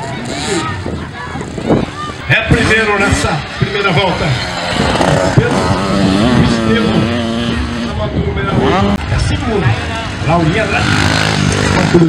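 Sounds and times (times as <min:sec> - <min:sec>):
dirt bike engine revving: 0:00.0 - 0:12.0.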